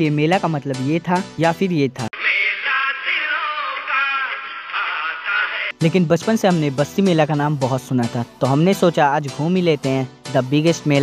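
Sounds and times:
tinny song with singing voice: 2.2s - 5.8s.

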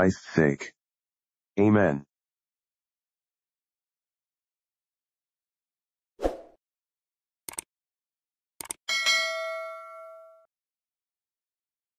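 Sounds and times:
bell-like notification ding: 8.9s - 10.5s.

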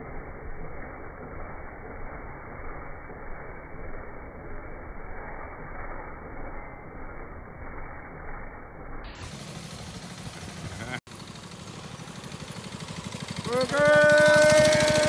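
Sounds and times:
trike engine puttering: 9.1s - 15.0s.

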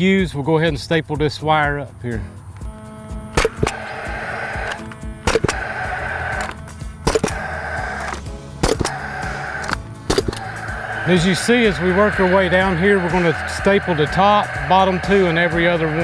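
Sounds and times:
background music: 0.0s - 16.0s
power stapler firing: 3.3s - 10.6s.

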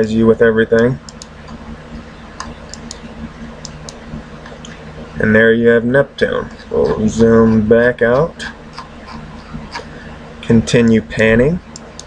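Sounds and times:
low background hum: 0.0s - 12.0s
computer mouse clicks: 0.8s - 1.6s, 2.4s - 3.0s.

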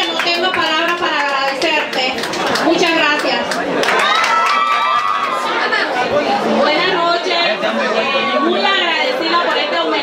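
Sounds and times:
woman talking through a microphone: 0.0s - 3.6s, 6.4s - 10.0s
crowd chatter: 0.0s - 10.0s.

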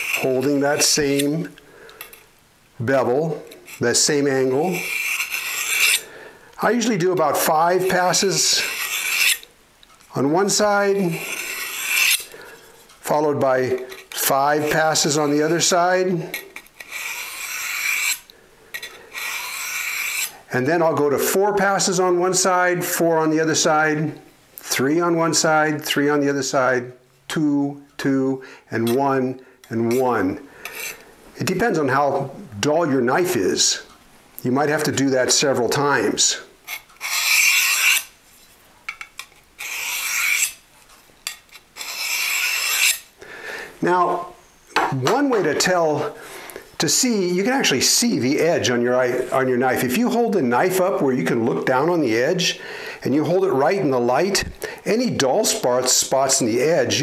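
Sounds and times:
knife scraping sharpening rod: 0.0s - 1.3s, 4.6s - 6.0s, 6.8s - 9.5s, 10.5s - 12.3s, 16.3s - 20.4s, 29.9s - 31.0s, 36.7s - 38.1s, 38.9s - 40.6s, 41.2s - 43.1s.

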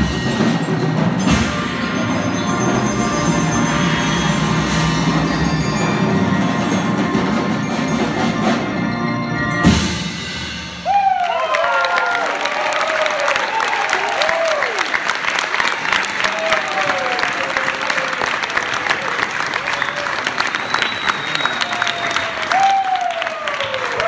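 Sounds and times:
audience applauding: 10.9s - 24.0s.

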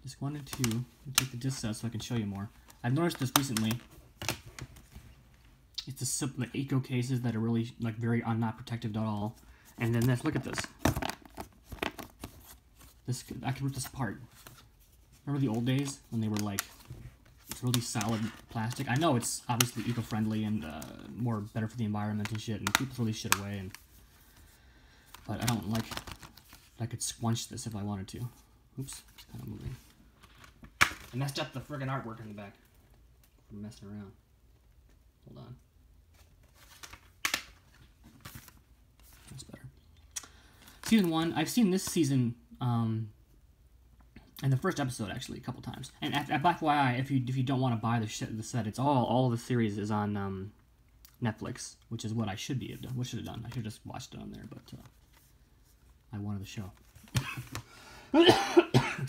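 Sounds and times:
plastic case handling: 9.7s - 13.0s, 25.1s - 26.7s.

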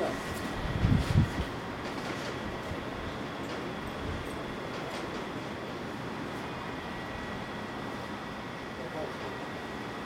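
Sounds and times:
process machinery running: 0.0s - 10.0s.

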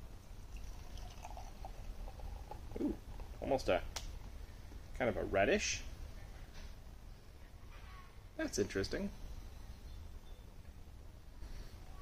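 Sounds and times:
beer pouring into glass: 0.4s - 3.7s.

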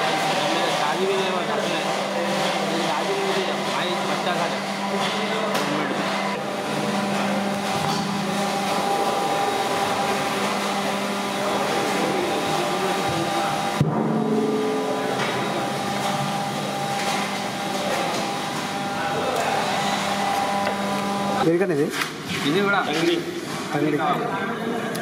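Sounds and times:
whirring machine: 0.0s - 24.2s.

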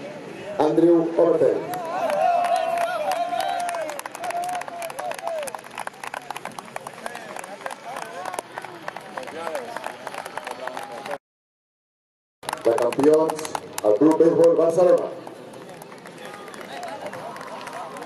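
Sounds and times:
people clapping: 1.7s - 11.2s, 12.4s - 18.0s.

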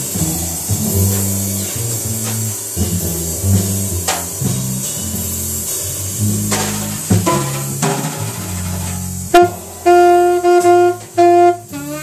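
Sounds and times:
double bass plucking: 0.0s - 12.0s
drum kit cymbals: 0.0s - 12.0s
sharp drum hit: 0.0s - 12.0s.

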